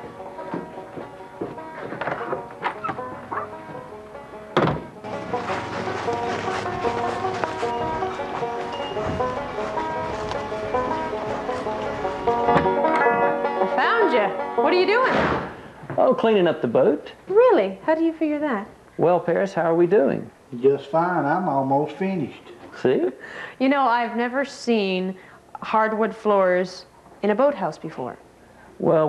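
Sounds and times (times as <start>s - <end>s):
banjo picking: 0.0s - 15.1s
sharp thunk: 4.6s - 5.0s, 15.0s - 15.6s.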